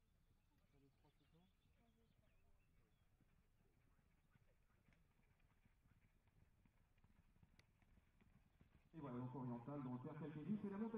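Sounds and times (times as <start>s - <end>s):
horse hoofbeats on grass: 1.7s - 9.0s.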